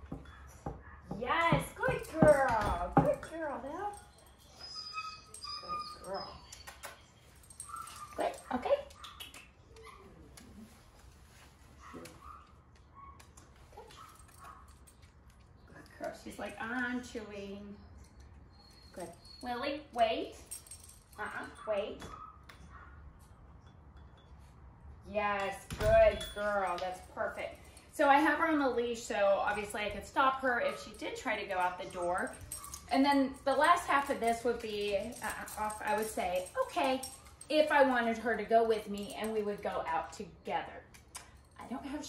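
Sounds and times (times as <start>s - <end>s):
dog whining: 4.0s - 7.0s.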